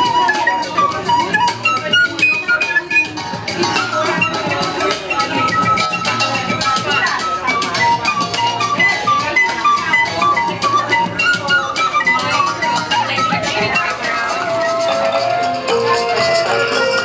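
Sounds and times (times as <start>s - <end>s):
quick percussive strokes: 0.0s - 13.6s
kalimba plucked: 0.0s - 17.0s
recorder melody: 0.0s - 17.0s.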